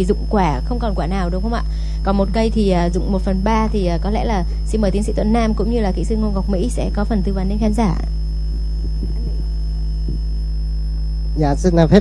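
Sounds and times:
low electrical mains hum: 0.0 - 12.0
faint voices: 8.8 - 9.6.

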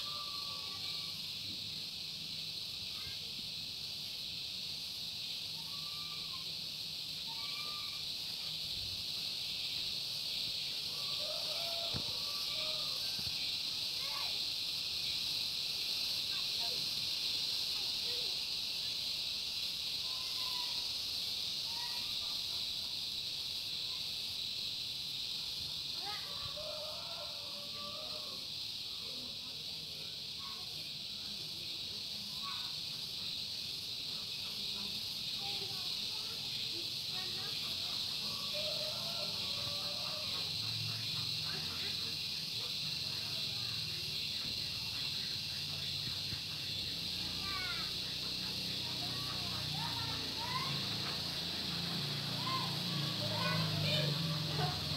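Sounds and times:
faint distant voices: 0.0 - 54.9
steady high hiss: 0.0 - 54.9.

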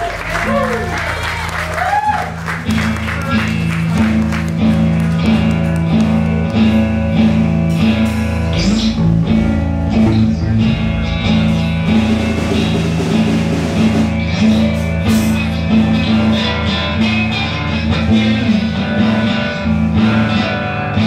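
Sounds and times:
drums: 0.0 - 21.0
electric bass: 0.0 - 21.0
acoustic guitar: 2.6 - 21.0.

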